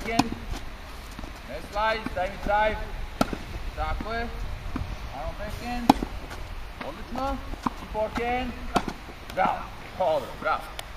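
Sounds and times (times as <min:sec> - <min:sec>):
tennis racket hitting ball: 0:00.0 - 0:02.6, 0:03.2 - 0:09.6.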